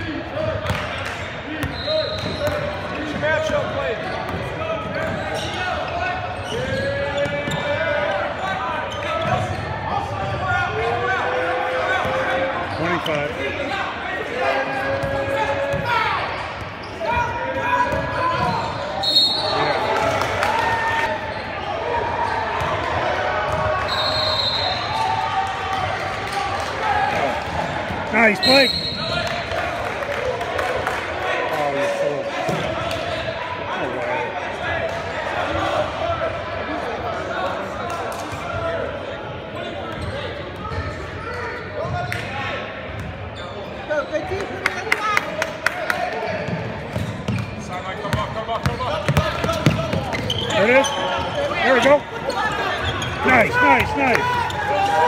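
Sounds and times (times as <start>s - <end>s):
voices of players and spectators: 0.0s - 55.0s
basketball bouncing on court: 46.4s - 50.5s.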